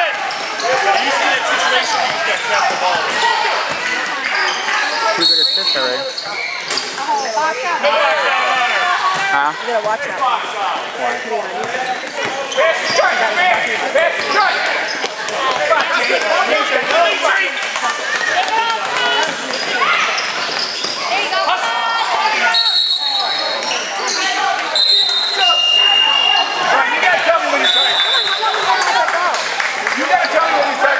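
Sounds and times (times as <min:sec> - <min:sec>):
people talking and calling out: 0:00.0 - 0:30.9.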